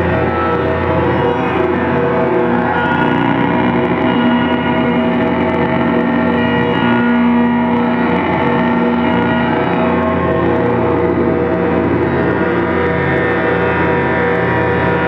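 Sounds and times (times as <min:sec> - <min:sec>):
electronic keyboard drone: 0:00.0 - 0:15.0
low held synth note: 0:00.0 - 0:15.0.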